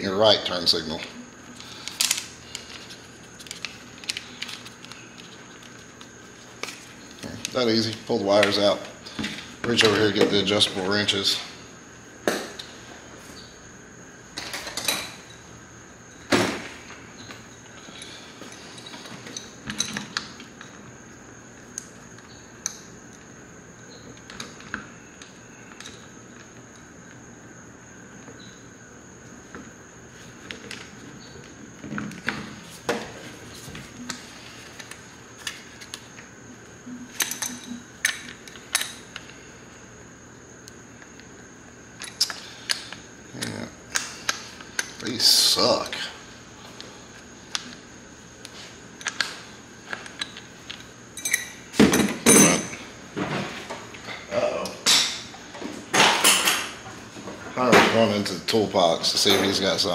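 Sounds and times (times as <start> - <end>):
wrench and metal parts clinking: 51.2 - 51.6.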